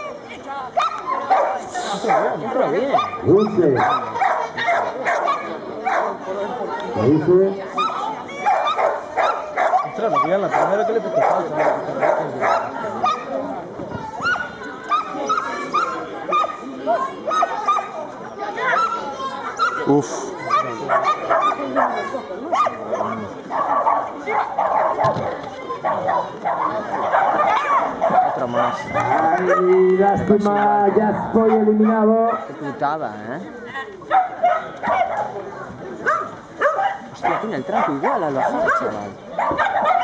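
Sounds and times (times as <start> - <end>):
background chatter of people: 0.0 - 40.0
dog barking and yipping: 0.8 - 6.2, 7.8 - 13.3, 20.5 - 25.2, 25.8 - 29.8, 31.4 - 32.5, 34.1 - 35.4, 36.0 - 40.0.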